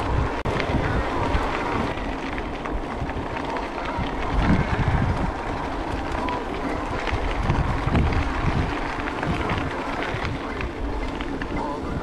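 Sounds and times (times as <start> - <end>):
bicycle tyres crunching on dirt: 0.0 - 12.0
bike rattling clicks: 0.0 - 12.0
wind buffeting microphone: 0.0 - 12.0.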